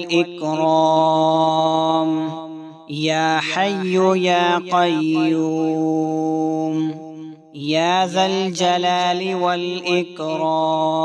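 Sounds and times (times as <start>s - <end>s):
person chanting a prayer: 0.0s - 11.0s.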